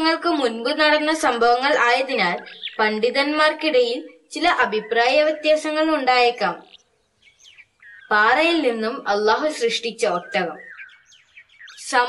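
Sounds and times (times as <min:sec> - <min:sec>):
faint bird chirps: 0:00.0 - 0:12.0.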